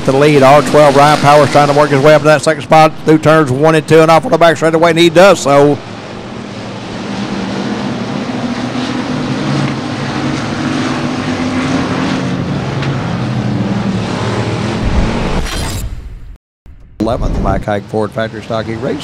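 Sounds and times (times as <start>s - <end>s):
race car engines: 0.0s - 15.6s, 17.1s - 19.0s.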